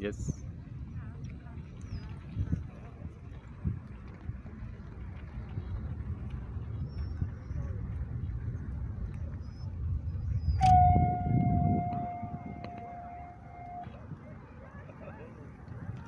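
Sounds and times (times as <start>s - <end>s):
whistling arrow in flight: 10.6s - 13.0s.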